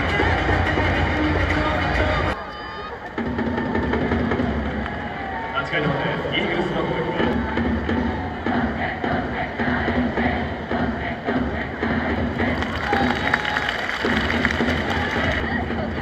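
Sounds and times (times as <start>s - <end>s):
cheering-section music with beat: 0.0s - 16.0s
crowd noise: 0.0s - 16.0s.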